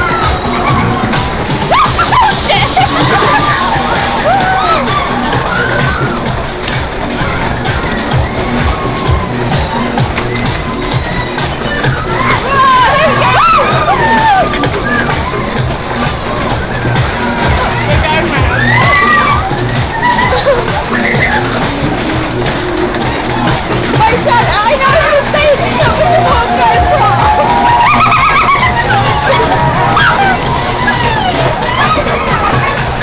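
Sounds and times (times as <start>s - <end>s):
loud music: 0.0s - 33.0s
riders screaming and whooping: 0.0s - 33.0s.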